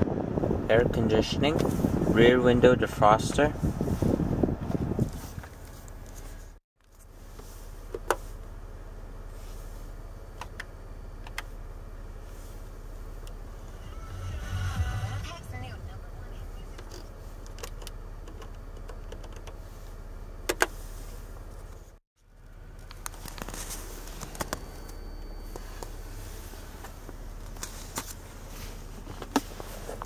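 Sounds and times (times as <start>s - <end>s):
low cabin hum: 0.0s - 30.0s
car radio: 13.2s - 19.6s.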